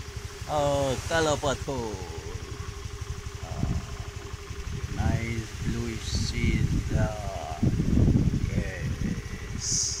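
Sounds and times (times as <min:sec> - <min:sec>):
scooter engine running: 0:00.0 - 0:10.0
person speaking: 0:00.5 - 0:02.7.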